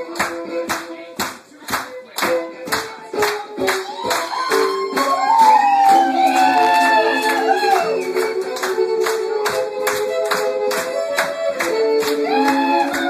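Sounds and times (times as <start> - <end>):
fiddle tune: 0.0 - 13.0.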